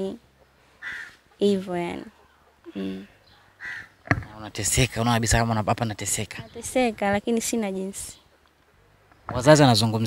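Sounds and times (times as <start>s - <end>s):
crow cawing: 0.8s - 1.4s, 3.4s - 4.2s.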